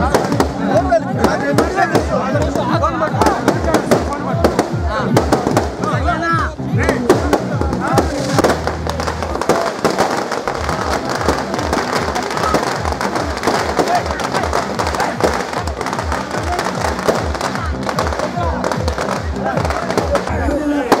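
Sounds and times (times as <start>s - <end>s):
firecrackers crackling: 0.0s - 6.2s, 6.8s - 21.0s
crowd voices: 0.0s - 21.0s
loud music with heavy beat: 0.0s - 21.0s.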